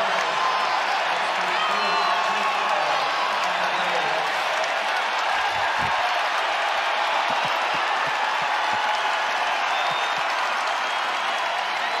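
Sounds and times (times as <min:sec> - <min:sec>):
crowd cheering and applauding: 0:00.0 - 0:12.0.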